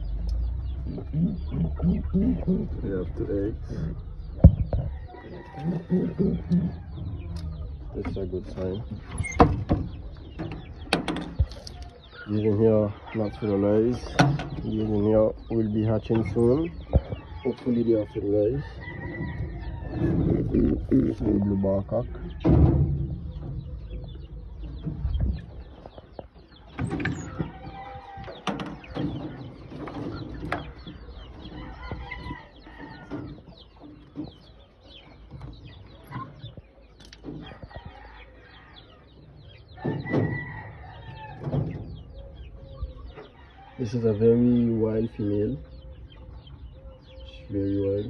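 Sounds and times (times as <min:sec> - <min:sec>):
birds calling: 0:00.0 - 0:48.0.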